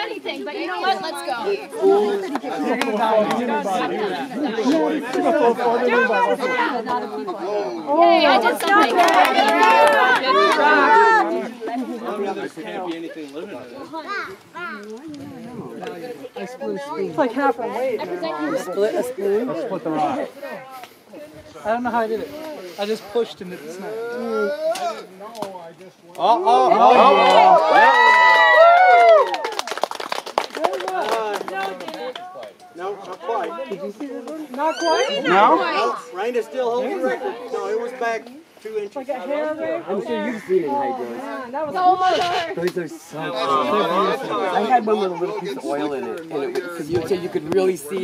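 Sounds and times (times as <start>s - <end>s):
group of people chattering: 0.0s - 48.0s
onlookers exclaiming: 8.3s - 11.5s, 26.2s - 29.7s, 34.6s - 36.1s.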